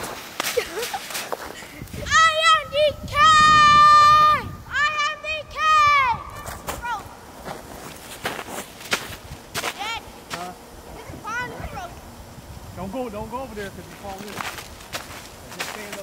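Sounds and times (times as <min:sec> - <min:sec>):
footsteps crunching in snow: 0:00.0 - 0:02.1, 0:06.2 - 0:11.1, 0:13.6 - 0:16.0.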